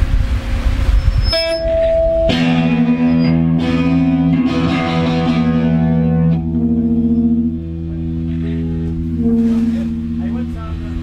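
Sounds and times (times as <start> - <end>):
low rumbling amplifier noise: 0.0 - 11.0
electric guitar held tone: 1.1 - 11.0.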